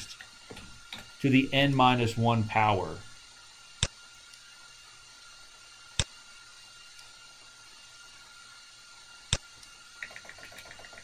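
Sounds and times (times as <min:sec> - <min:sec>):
faint hiss with high tone: 0:00.0 - 0:11.0.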